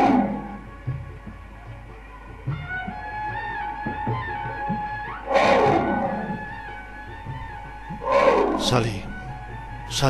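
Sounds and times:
big cat roaring: 0:05.3 - 0:06.6, 0:08.0 - 0:09.2.

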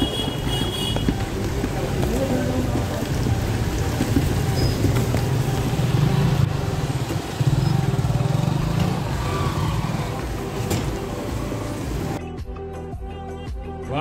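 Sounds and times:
motorcycle engines droning: 0:00.0 - 0:12.2.

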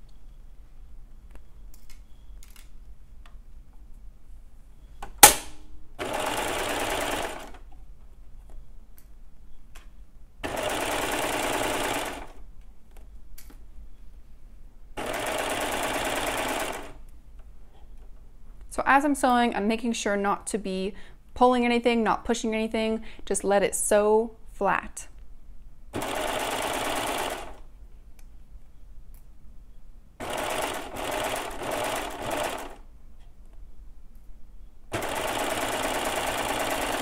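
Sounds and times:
sharp click: 0:05.0 - 0:05.7
serger sewing a seam: 0:06.0 - 0:07.6, 0:10.4 - 0:12.4, 0:15.0 - 0:17.0, 0:26.0 - 0:27.7, 0:30.2 - 0:32.8, 0:34.9 - 0:37.0.

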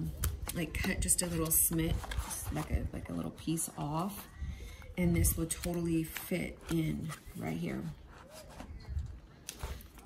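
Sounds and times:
paper rustling: 0:00.5 - 0:03.0, 0:05.4 - 0:10.0.

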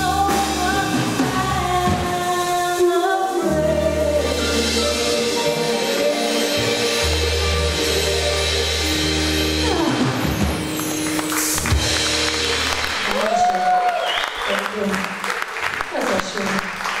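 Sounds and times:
audience clapping and cheering: 0:10.6 - 0:17.0.

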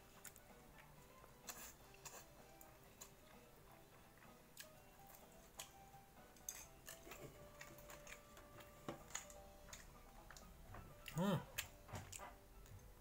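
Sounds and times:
faint music: 0:00.0 - 0:13.0.

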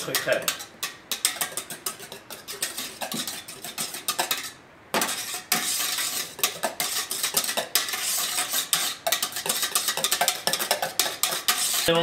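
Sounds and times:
whisk scraping steel bowl: 0:00.0 - 0:12.0.

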